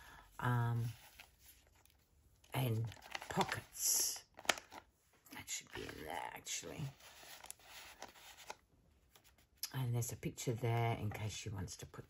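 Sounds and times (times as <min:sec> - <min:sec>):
paper pages rustling: 0:00.8 - 0:04.9, 0:06.8 - 0:09.5.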